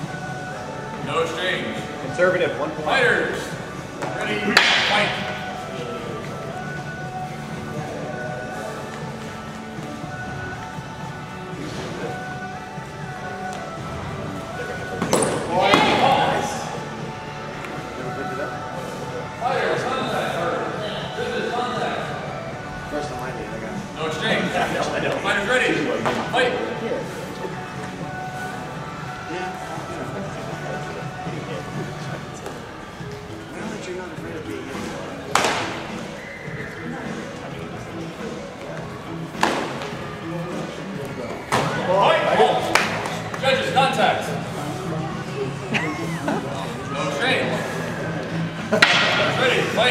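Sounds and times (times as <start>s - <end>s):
background music: 0.0s - 49.9s.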